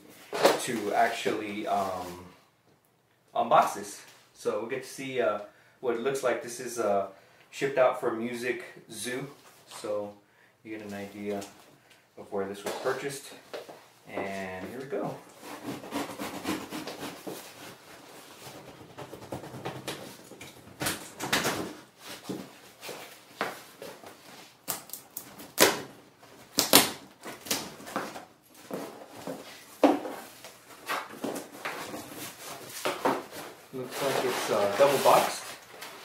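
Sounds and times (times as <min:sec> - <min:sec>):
cardboard flaps rustling: 0:15.3 - 0:24.6, 0:25.3 - 0:36.0
sharp cracks and knocks: 0:24.6 - 0:25.9, 0:26.5 - 0:28.2
packing tape tearing: 0:24.6 - 0:28.2.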